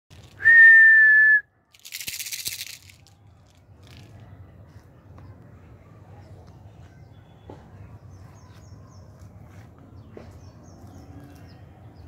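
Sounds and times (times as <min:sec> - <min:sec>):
long high whistle: 0:00.4 - 0:01.5.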